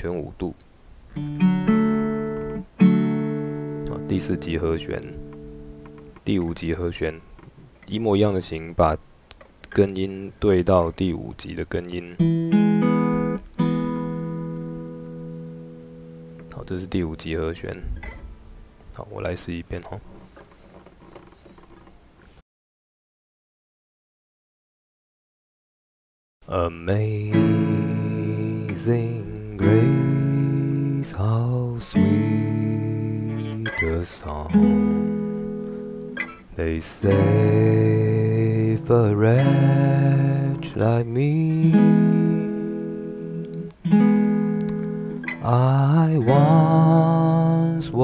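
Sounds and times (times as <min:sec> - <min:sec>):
acoustic guitar chords plucked: 0:01.2 - 0:07.3, 0:12.0 - 0:18.8, 0:26.9 - 0:48.0
fingers rubbing guitar strings: 0:33.3 - 0:34.0.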